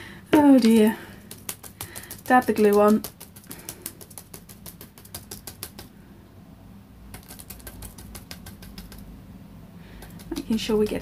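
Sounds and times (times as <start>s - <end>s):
brush dabbing glue on paper: 0.5s - 6.0s, 7.1s - 9.0s, 10.0s - 11.0s.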